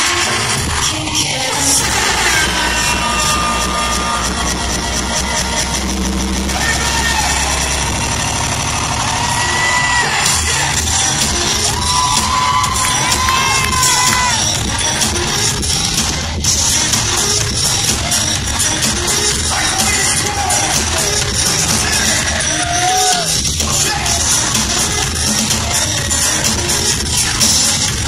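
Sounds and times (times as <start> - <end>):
fans cheering and screaming: 0.0 - 28.0
live concert music: 0.0 - 28.0.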